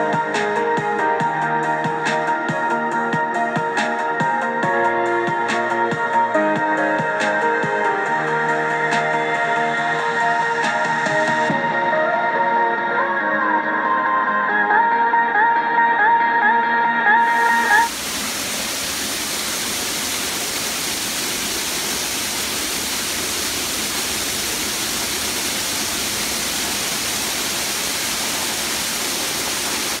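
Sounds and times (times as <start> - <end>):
background music: 0.0 - 19.5
water rushing from waterfall: 17.2 - 30.0.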